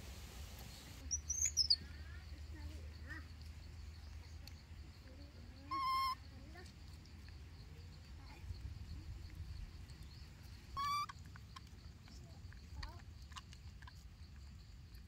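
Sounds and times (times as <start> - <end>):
faint small chirps: 0.6 - 14.4
high animal calls: 5.7 - 6.2, 10.7 - 11.2.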